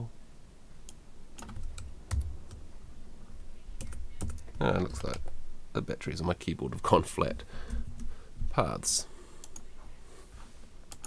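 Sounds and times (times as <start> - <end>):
keystrokes on computer keyboard: 0.8 - 2.6, 3.8 - 5.4.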